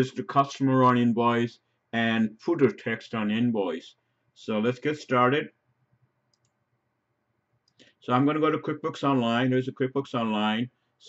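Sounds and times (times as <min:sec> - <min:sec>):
faint clicks: 0:06.3 - 0:06.6.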